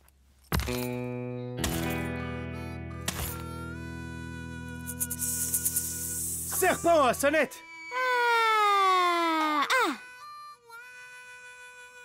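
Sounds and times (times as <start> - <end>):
harmonica holding long note: 1.4 - 12.0.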